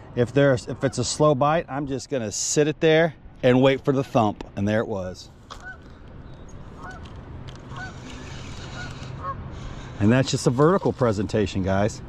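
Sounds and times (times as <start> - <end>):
wind and water noise: 0.0 - 12.0
distant birds honking: 5.4 - 11.0.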